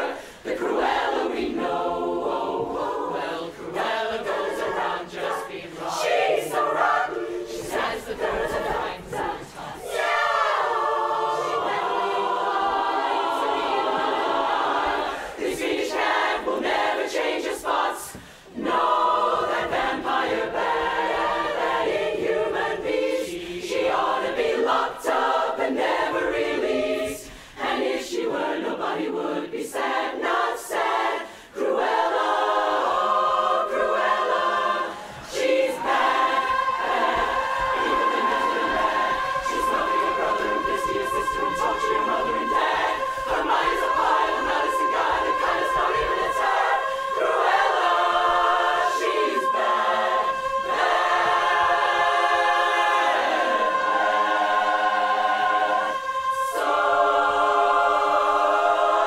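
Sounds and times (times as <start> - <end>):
women's chorus singing a cappella: 0.0 - 59.0.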